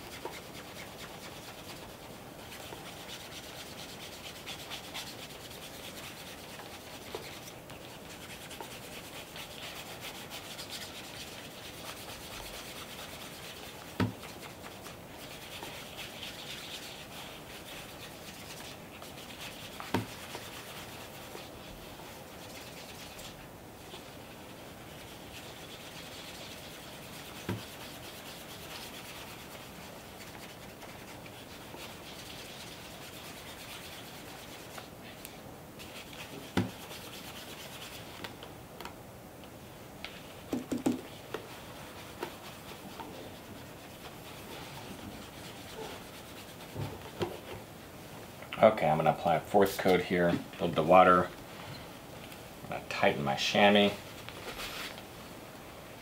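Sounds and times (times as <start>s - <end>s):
cloth rubbing on leather shoe: 0.0s - 35.2s, 35.8s - 38.3s, 40.2s - 47.6s, 52.7s - 55.2s.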